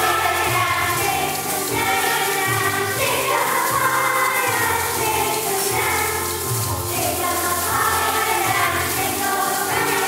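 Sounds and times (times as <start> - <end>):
children's choir singing: 0.0 - 10.0.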